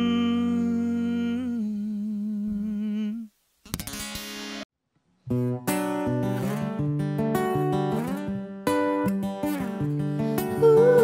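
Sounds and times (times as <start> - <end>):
acoustic guitar strum: 3.6 - 11.0.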